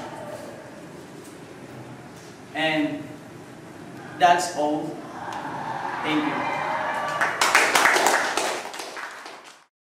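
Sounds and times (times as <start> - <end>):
audience applause: 5.2 - 9.7.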